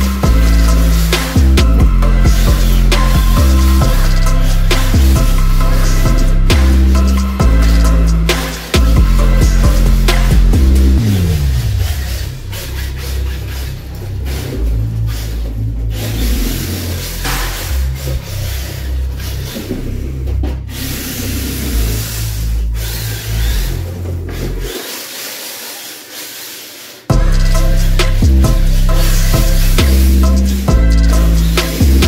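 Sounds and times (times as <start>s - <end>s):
toy car tyres sliding on tile: 11.5s - 27.1s.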